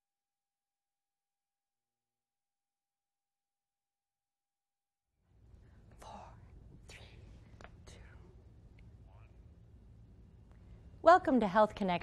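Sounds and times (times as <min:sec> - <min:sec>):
steady low hum: 0:05.2 - 0:12.0.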